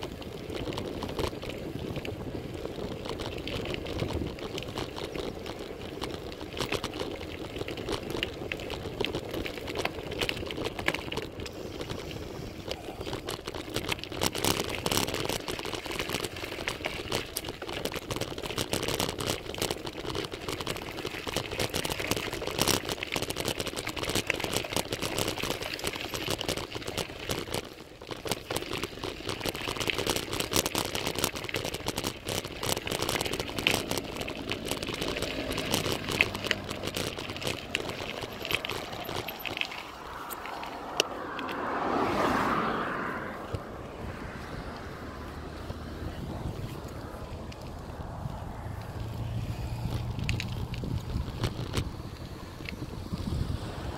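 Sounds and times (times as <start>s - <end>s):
bike tyres clicking and rattling: 0.0s - 53.9s.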